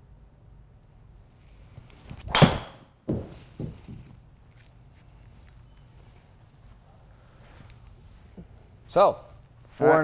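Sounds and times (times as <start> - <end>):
golf club swing whoosh: 2.0 - 3.8
soft thuds: 2.1 - 4.2
clubhead striking golf ball: 2.2 - 3.8.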